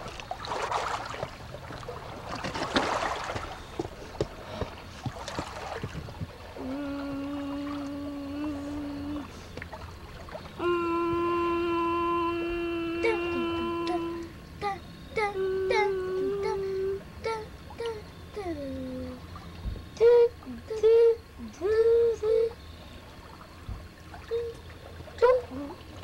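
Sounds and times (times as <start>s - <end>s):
small waves lapping on boulders: 0.0s - 17.9s.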